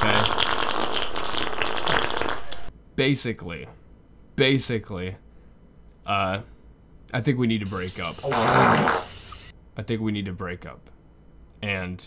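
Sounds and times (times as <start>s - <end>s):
fart sound effect: 0.2s - 2.6s, 8.2s - 9.5s.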